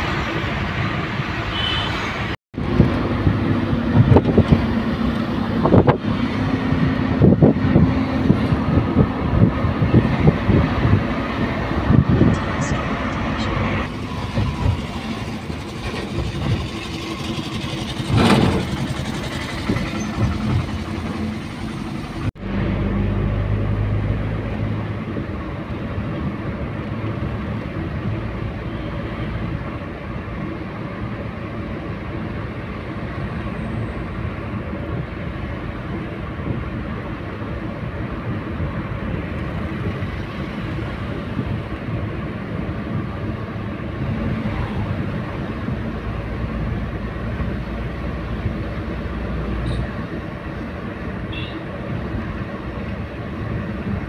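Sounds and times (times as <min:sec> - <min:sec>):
car road and wind rumble: 0:00.0 - 0:54.0
knocks and gusts: 0:02.2 - 0:22.4.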